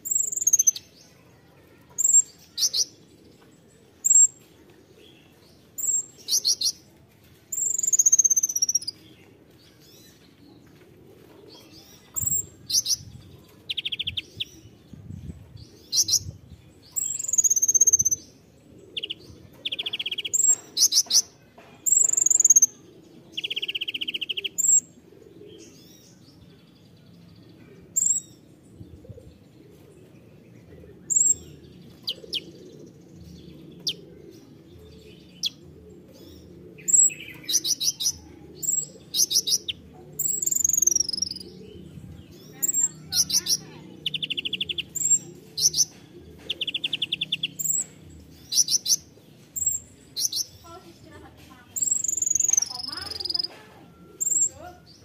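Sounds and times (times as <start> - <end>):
sunbird singing: 0.0 - 1.0, 4.0 - 4.4, 7.5 - 9.3, 15.3 - 26.7, 30.6 - 55.0.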